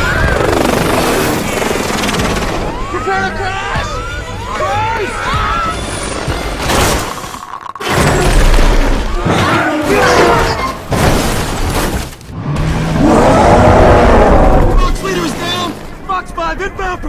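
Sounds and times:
film score: 0:00.0 - 0:17.0
people yelling and screaming: 0:02.8 - 0:06.0, 0:09.2 - 0:10.8.

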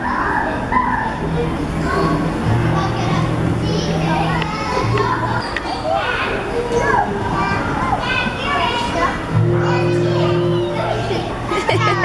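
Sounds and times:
low background tones: 0:00.0 - 0:12.0
young children playing and calling: 0:00.0 - 0:12.0.

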